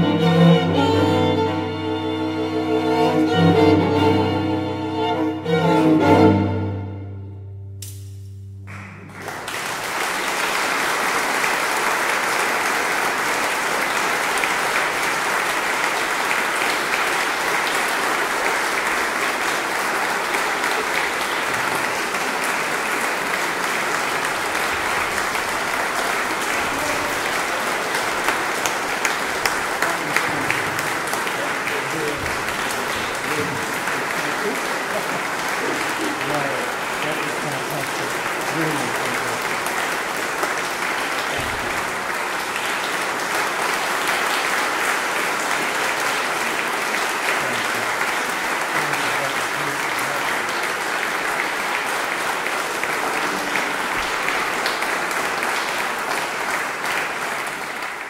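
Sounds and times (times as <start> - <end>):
audience applauding: 0.0 - 7.1, 8.7 - 58.0.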